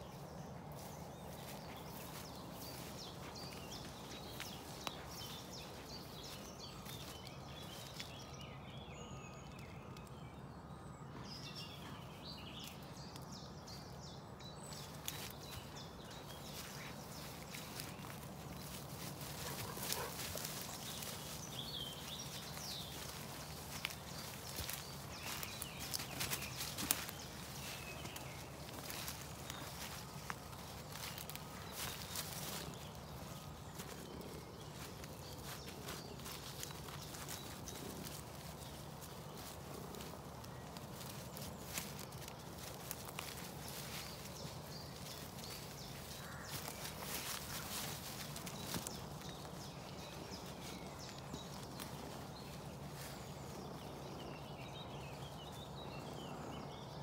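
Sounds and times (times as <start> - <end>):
footsteps through leafy undergrowth: 0.0 - 8.5, 14.6 - 56.0.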